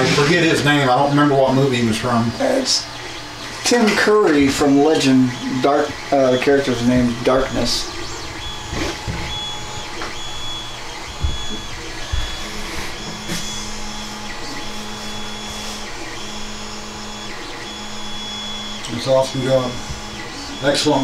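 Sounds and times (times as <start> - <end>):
printer motors whirring: 0.0 - 21.0
low thumps: 6.8 - 14.4.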